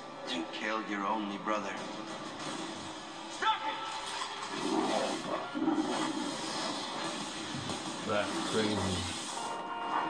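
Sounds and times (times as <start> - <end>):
trailer music: 0.0 - 10.0.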